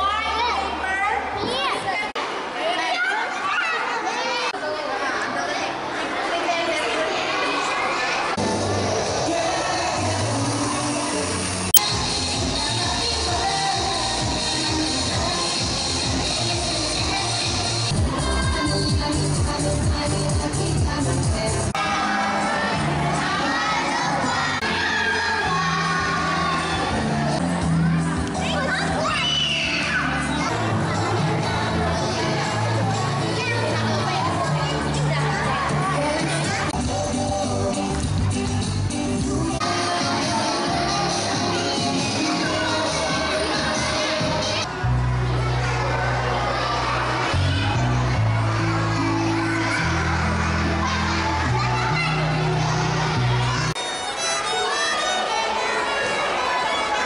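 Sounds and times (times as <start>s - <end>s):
young children talking and calling out: 0.0s - 57.0s
backing music: 8.4s - 55.5s.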